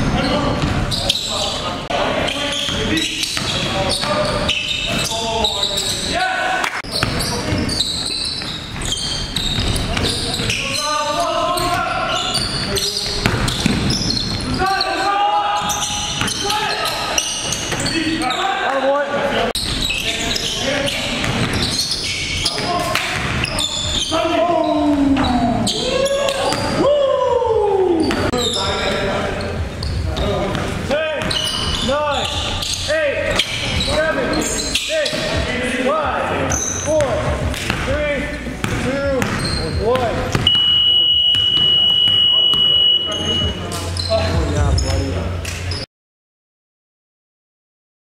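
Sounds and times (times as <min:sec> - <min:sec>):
shoe squeaks: 0:00.0 - 0:06.2, 0:06.8 - 0:18.7, 0:19.6 - 0:26.8, 0:28.0 - 0:35.5, 0:36.4 - 0:37.2, 0:38.1 - 0:45.9
players' voices: 0:00.0 - 0:45.8.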